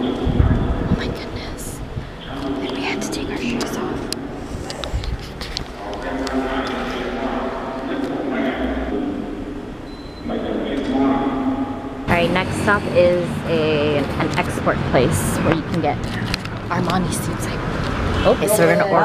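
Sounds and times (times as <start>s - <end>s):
indistinct voices in a hall: 0.0s - 19.0s.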